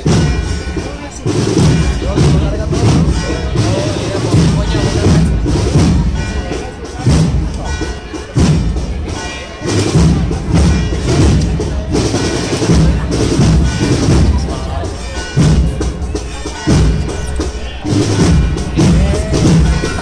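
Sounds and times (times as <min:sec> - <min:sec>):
bass drum beats: 0:00.0 - 0:20.0
cornet and trumpet melody: 0:00.0 - 0:20.0
crowd voices: 0:00.0 - 0:20.0.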